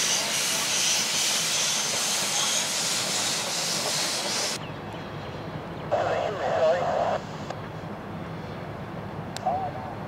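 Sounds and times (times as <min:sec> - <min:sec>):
steam locomotive rumbling: 0:00.0 - 0:04.7.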